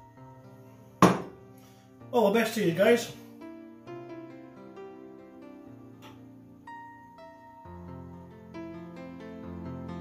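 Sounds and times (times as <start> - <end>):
background music: 0.0 - 10.0
glass bottle knocking on worktop: 1.0 - 1.4.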